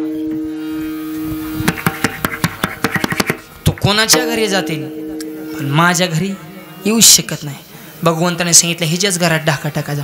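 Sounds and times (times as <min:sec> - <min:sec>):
harmonium chord: 0:00.0 - 0:10.0
sharp drum strikes: 0:00.2 - 0:07.4.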